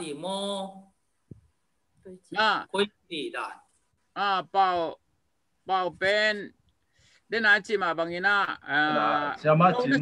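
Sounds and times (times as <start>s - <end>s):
man speaking over video call: 2.0s - 10.0s.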